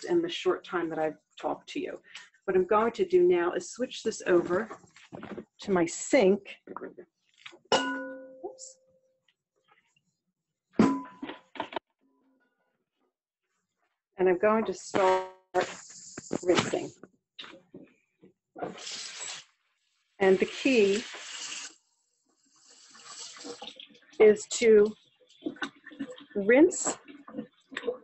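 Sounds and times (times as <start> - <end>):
tap water running into sink: 20.5 - 21.8, 22.6 - 24.0.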